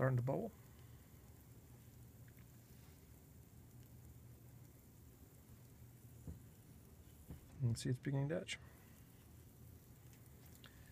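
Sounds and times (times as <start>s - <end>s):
faint hiss: 0.0s - 10.9s
low steady hum: 0.0s - 10.9s.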